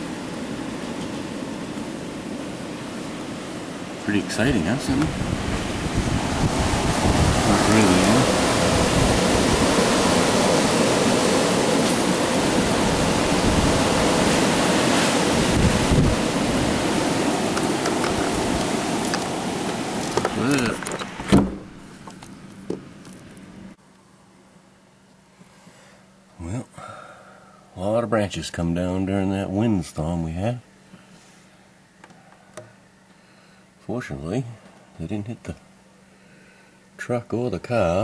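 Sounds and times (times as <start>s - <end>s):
strong storm wind rushing: 0.0s - 20.7s
wind buffeting microphone: 4.6s - 21.8s.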